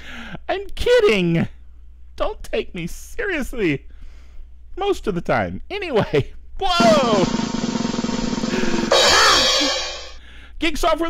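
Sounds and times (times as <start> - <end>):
cymbal crash: 6.8 - 10.2
snare drum roll: 6.8 - 10.2.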